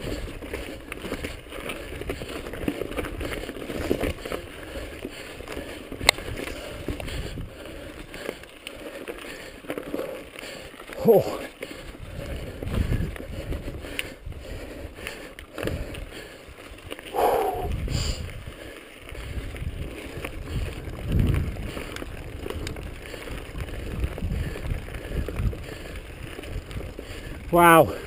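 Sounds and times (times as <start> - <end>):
bike tyres rumbling over rocks: 0.0 - 28.0.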